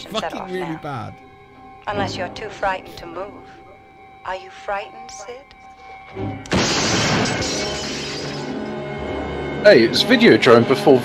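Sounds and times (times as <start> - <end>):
film score music: 0.0 - 11.0
gunshot: 6.5 - 7.8
glass screen shattering: 6.5 - 8.7.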